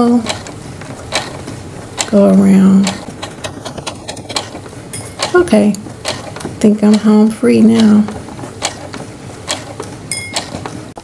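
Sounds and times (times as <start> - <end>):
sewing machine stitching: 0.0 - 11.0
mechanical clicks: 0.1 - 11.0.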